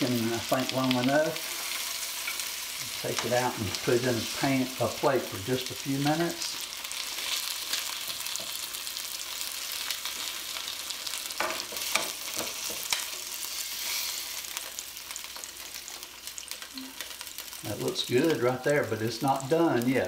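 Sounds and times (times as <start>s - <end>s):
chicken sizzling in a skillet: 0.0s - 20.0s.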